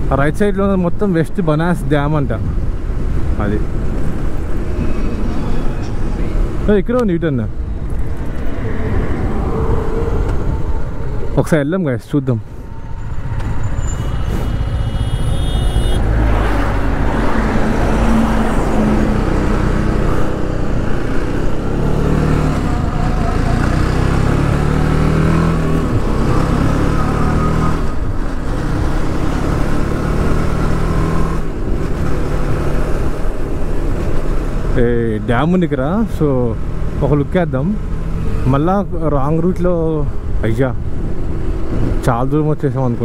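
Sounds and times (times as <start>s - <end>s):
motorcycle engine accelerating: 12.6s - 33.2s.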